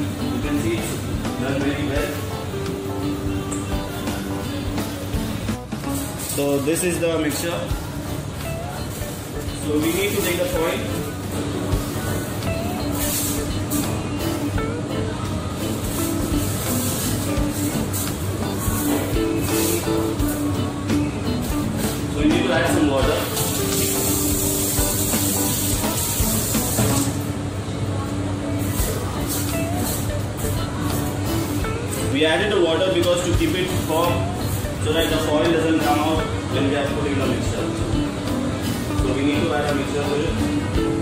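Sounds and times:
background music: 0:00.0 - 0:41.0
steady hiss: 0:22.7 - 0:27.2.

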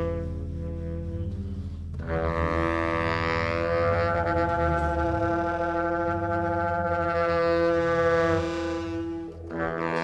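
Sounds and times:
low bass drone: 0:00.0 - 0:10.0.

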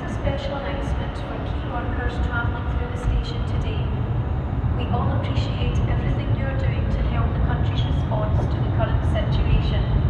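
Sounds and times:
electric train rumbling: 0:00.0 - 0:10.0
public-address announcement: 0:00.0 - 0:10.0.

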